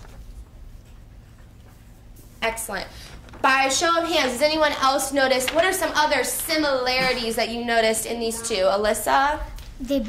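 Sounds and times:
paper rustling: 0.0s - 2.0s, 3.1s - 7.2s
low steady hum: 0.0s - 10.0s.

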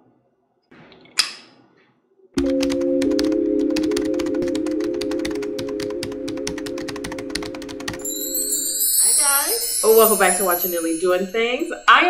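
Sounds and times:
fast even clicking: 2.4s - 8.1s
intro music with low chord: 2.4s - 9.0s.

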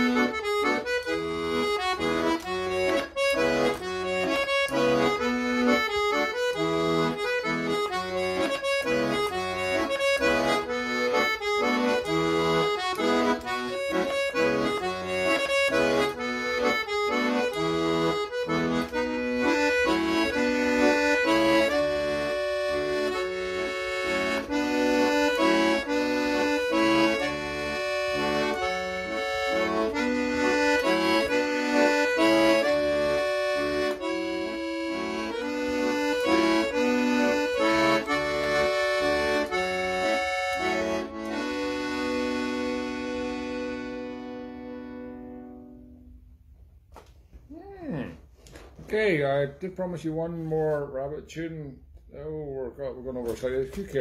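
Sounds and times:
accordion playing folk tune: 0.0s - 47.1s.

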